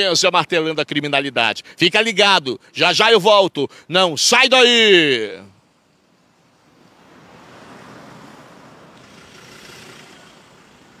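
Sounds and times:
faint street traffic: 0.0 - 11.0.

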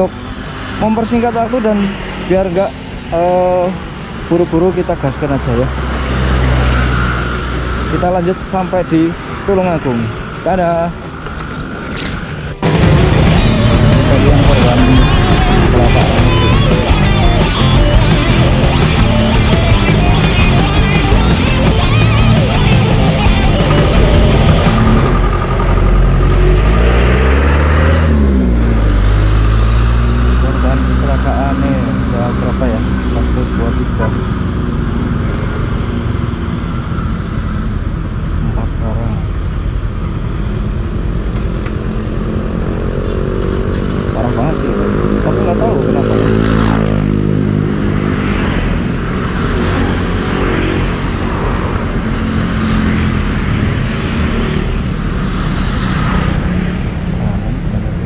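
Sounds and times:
scooter engine accelerating: 11.1 - 31.2.

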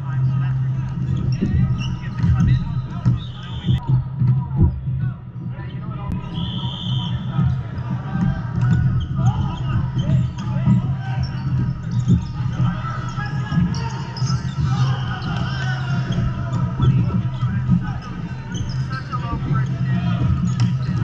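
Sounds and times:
din of voices: 0.0 - 21.0.

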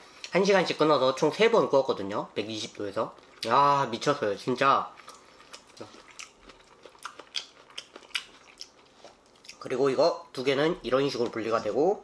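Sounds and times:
person chewing food: 4.9 - 9.6.

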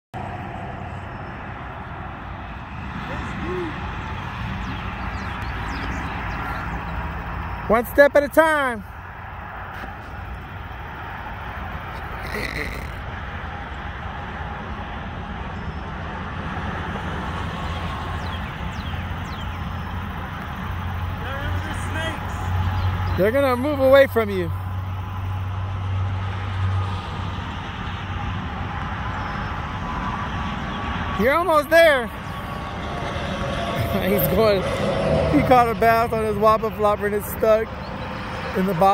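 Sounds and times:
outdoor background noise: 0.2 - 38.9
road traffic rumble: 0.2 - 38.9
low hum: 32.0 - 38.8.

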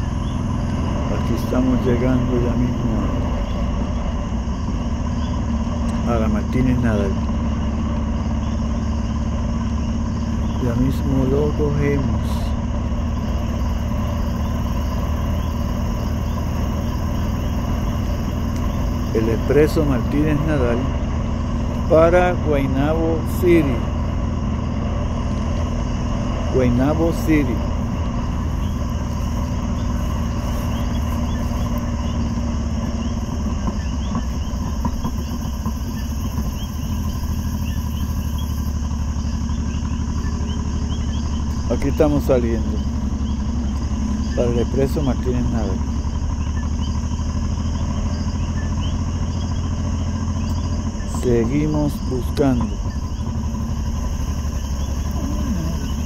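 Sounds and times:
crickets chirping: 0.0 - 56.0
motorcycle engine cruising: 0.0 - 56.0
steady low hum: 0.0 - 56.0
wet road noise: 0.0 - 56.0.

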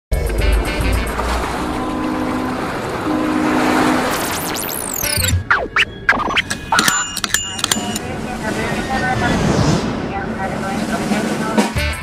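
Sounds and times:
held low chord: 0.1 - 4.2
electronic intro music: 0.1 - 8.1
whooshing noise: 8.1 - 11.6.

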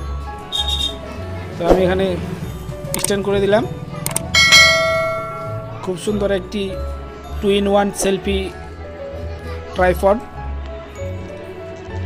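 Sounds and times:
quick clicks: 4.1 - 4.3
bright bell ding: 4.4 - 5.9.

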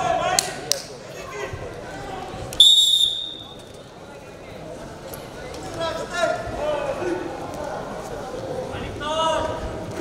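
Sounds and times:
crowd chatter in a large hall: 0.0 - 10.0
referee's whistle blast: 2.6 - 3.6.

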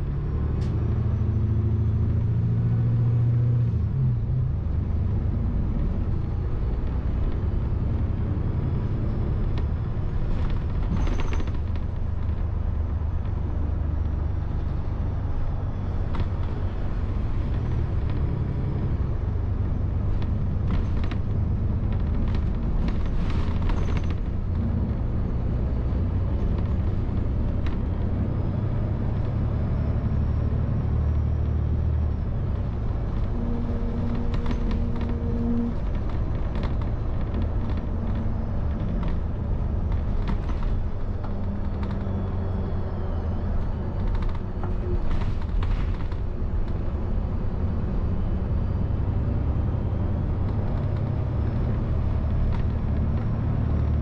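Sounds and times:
bus engine and road rumble: 0.0 - 54.0.

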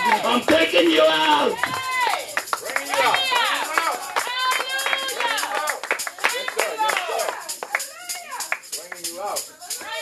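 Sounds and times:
excited shouting voices: 0.0 - 7.3
congregation clapping rhythmically: 0.0 - 9.4
music: 0.0 - 10.0.

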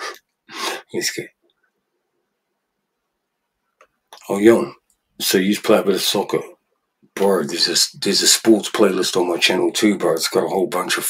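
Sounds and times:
man's breathy vocal bursts: 0.0 - 1.0.

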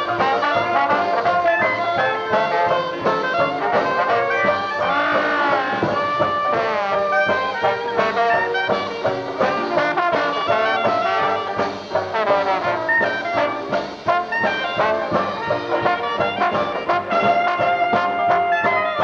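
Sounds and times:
jazz band playing live: 0.0 - 19.0.

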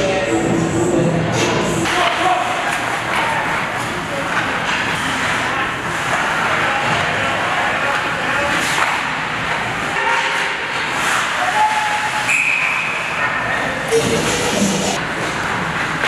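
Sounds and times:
spectator chatter: 0.0 - 15.5.

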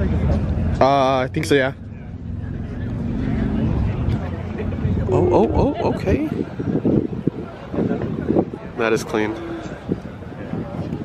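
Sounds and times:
faint voices: 1.8 - 11.0.

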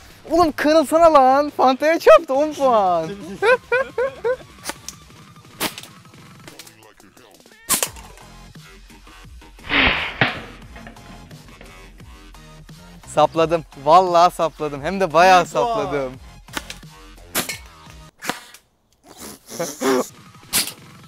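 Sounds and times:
quiet background music: 0.2 - 18.2, 19.8 - 21.0
loud sharp crack: 4.6 - 6.8, 7.7 - 8.2, 9.6 - 11.9, 16.5 - 18.7.

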